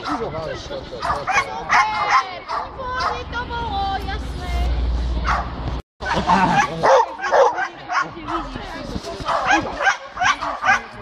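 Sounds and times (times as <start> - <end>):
dog barking and yelping: 5.2 - 8.4, 9.2 - 10.9.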